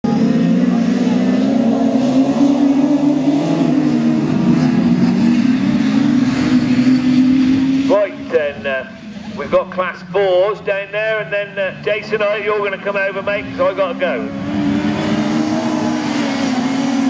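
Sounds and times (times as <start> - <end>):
racing car engines droning: 0.0 - 17.0.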